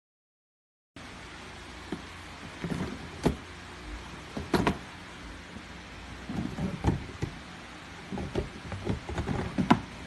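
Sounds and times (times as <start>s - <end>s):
plastic drawers sliding: 1.9s - 3.5s, 4.1s - 4.9s, 6.2s - 10.0s
drawers knocking: 4.3s - 4.9s, 6.3s - 7.4s, 8.1s - 10.0s.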